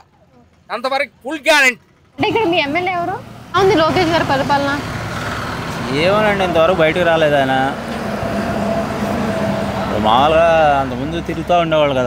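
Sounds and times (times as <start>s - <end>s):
passing road traffic: 0.0s - 12.0s
man talking: 5.8s - 7.8s.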